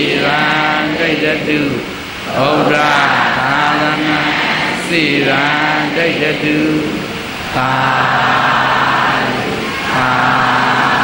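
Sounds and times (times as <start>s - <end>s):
monk chanting into microphone: 0.0s - 11.0s.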